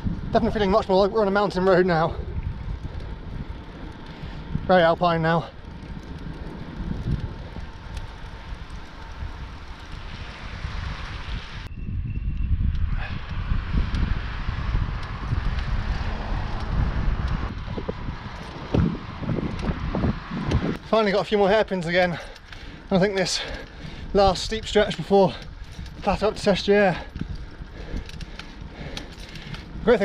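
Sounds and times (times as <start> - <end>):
bike rolling on tarmac: 0.0 - 30.0
wind rumbling on microphone: 0.0 - 30.0.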